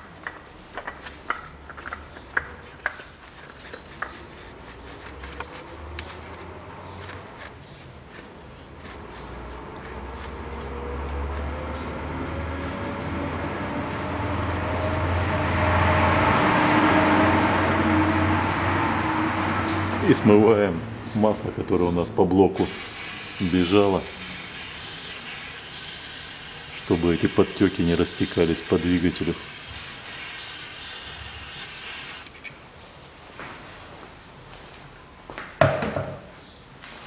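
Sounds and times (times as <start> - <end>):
oil filter screwing clicks: 0.2 - 4.2
machine droning hum rising in pitch: 10.7 - 20.0.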